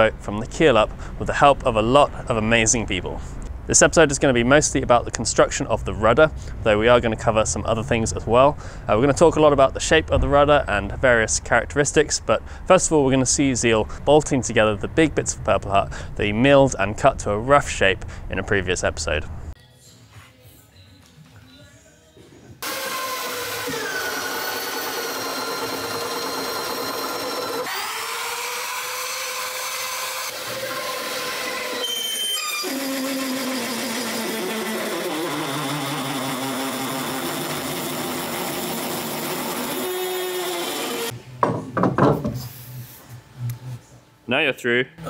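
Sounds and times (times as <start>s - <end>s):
electric drill boring through wood: 22.6s - 41.1s.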